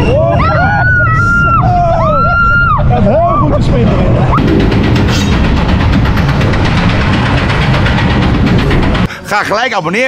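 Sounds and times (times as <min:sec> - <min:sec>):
roller coaster wheels rumbling: 0:00.0 - 0:10.0
rapid track clatter: 0:03.0 - 0:10.0.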